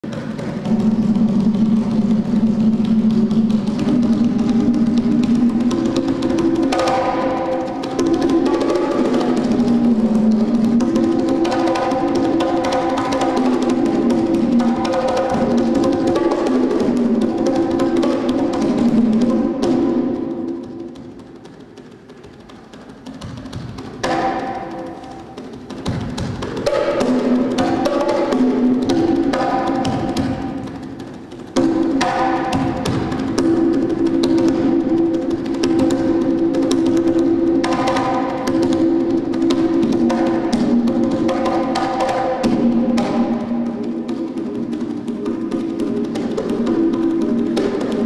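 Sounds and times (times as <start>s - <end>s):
rapid hand drumming: 0.0s - 48.0s
sustained low drum tone: 0.6s - 6.8s.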